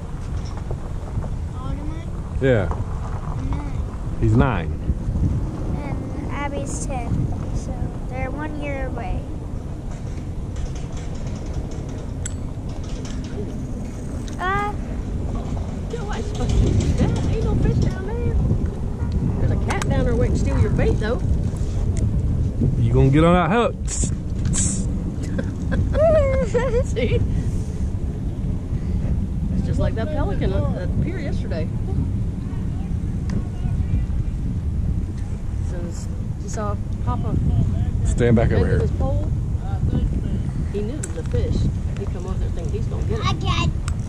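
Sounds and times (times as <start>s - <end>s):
wind buffeting microphone: 0.0s - 44.0s
voices: 1.5s - 5.0s, 5.6s - 9.5s, 12.9s - 22.2s, 22.8s - 27.9s, 29.4s - 34.5s, 35.2s - 44.0s
faint voices: 29.0s - 34.5s.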